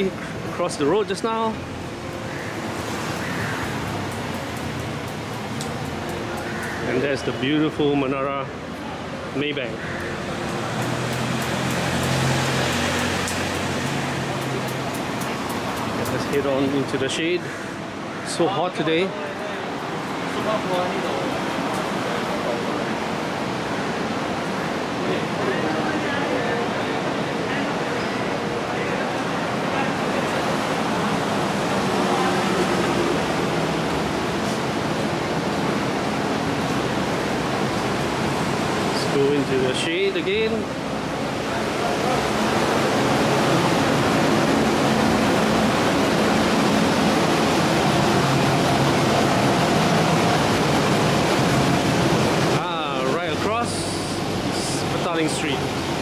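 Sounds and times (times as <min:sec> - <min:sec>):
vehicle engine hum: 0:00.0 - 0:18.2, 0:28.3 - 0:56.0
street traffic hiss: 0:00.0 - 0:56.0.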